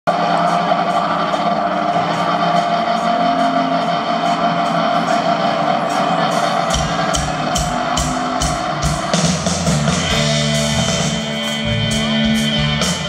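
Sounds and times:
amplified rock band chord: 0.1s - 13.0s.

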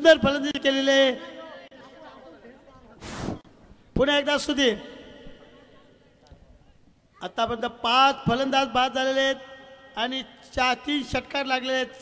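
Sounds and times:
faint background chatter: 1.2s - 3.9s, 5.2s - 7.4s.

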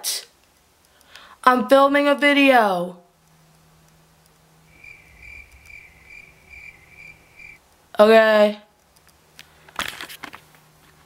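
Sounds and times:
faint low hum: 0.3s - 11.0s
cricket chirping: 4.7s - 7.6s.

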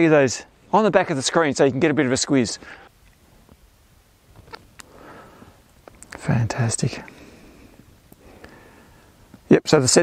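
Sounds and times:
soft breath: 4.8s - 5.6s, 7.0s - 9.3s.

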